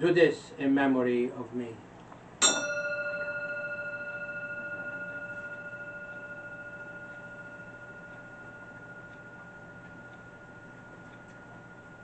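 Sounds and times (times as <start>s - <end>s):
bell ringing: 2.4s - 12.0s.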